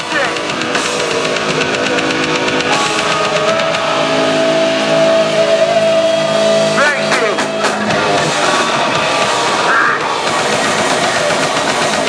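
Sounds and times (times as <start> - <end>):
distorted guitars: 0.0 - 12.0
drums: 0.0 - 12.0.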